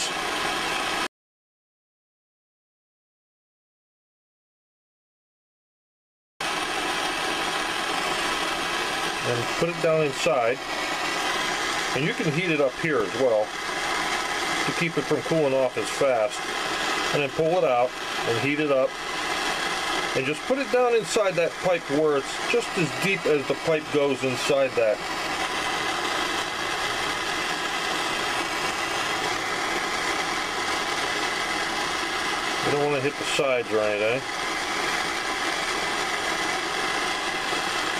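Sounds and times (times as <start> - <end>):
gas torch flame hissing: 0.0 - 1.1, 6.4 - 37.9.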